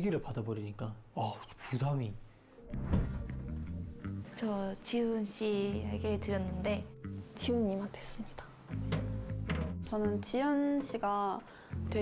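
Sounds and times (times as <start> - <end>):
soft guitar and bass music: 2.6 - 12.0.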